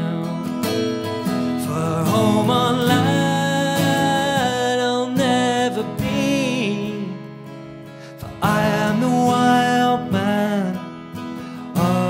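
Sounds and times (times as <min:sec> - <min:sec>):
man singing: 0:00.0 - 0:07.5, 0:08.1 - 0:12.0
acoustic guitar: 0:00.0 - 0:12.0.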